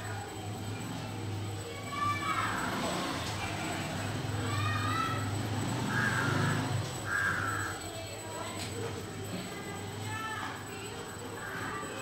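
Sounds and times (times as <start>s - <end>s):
harsh animal calls: 5.7s - 7.8s.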